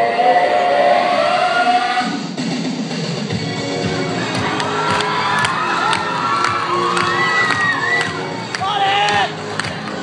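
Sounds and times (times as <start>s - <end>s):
audience noise in a hall: 3.3s - 10.0s.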